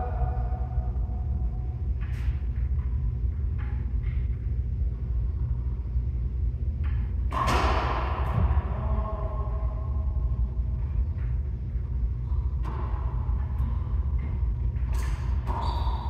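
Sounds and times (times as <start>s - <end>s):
steady low rumble: 0.0s - 16.0s
racquetball smack echoing: 7.3s - 8.6s.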